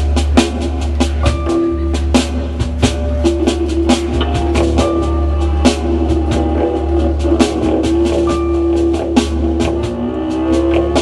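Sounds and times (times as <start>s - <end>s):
drum and cymbal hits: 0.0s - 11.0s
live instrumental band: 0.0s - 11.0s.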